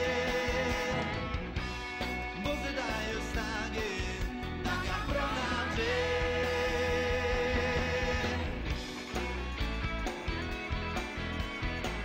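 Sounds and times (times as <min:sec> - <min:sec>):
drums: 0:00.0 - 0:12.0
electric guitar: 0:00.0 - 0:12.0
live rock band playing: 0:00.0 - 0:12.0.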